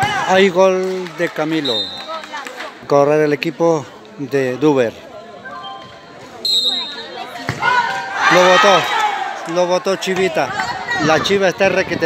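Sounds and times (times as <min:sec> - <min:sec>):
spectators chattering faintly: 0:00.0 - 0:12.0
referee's whistle blast: 0:06.4 - 0:07.1.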